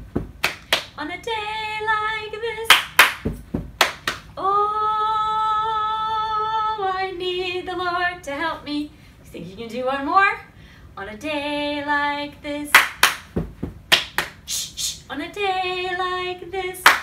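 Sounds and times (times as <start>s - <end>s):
hands clapping: 0.4s - 1.0s, 2.7s - 4.3s, 12.7s - 13.3s, 13.9s - 14.4s
woman singing a cappella: 1.0s - 2.8s, 4.3s - 12.9s, 14.5s - 17.0s.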